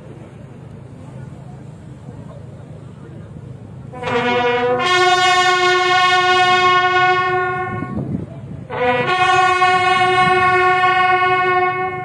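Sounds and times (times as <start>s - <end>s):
bugle call: 3.9s - 8.0s, 8.7s - 12.0s.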